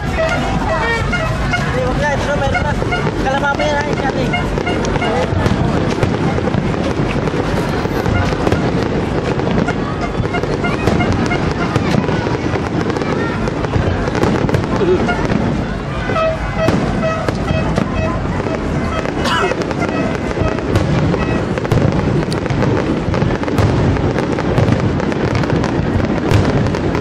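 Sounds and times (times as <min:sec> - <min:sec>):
crowd chattering: 0:00.0 - 0:27.0
fireworks bangs and crackles: 0:00.0 - 0:27.0.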